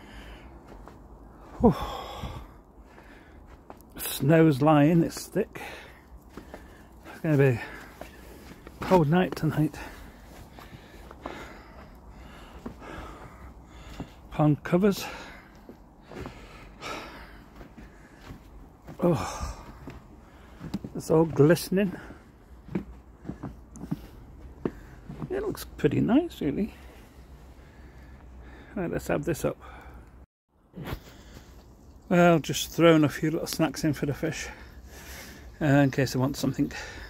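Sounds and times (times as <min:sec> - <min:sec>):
man breathing softly: 0:00.0 - 0:03.8, 0:05.6 - 0:08.8, 0:09.8 - 0:14.3, 0:15.0 - 0:18.6, 0:26.7 - 0:28.8, 0:29.6 - 0:30.2.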